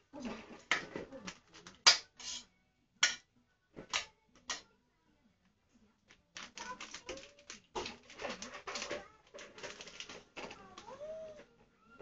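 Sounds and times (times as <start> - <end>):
objects clattering and knocking: 0.0 - 3.2, 6.0 - 11.7.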